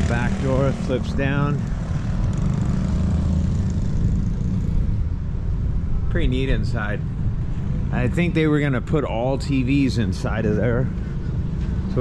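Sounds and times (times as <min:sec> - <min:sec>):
steady low rumble: 0:04.8 - 0:12.0.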